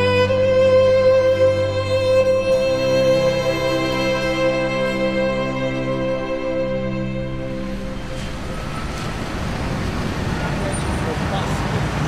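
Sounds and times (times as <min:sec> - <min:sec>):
cars passing on street: 0:00.0 - 0:12.0.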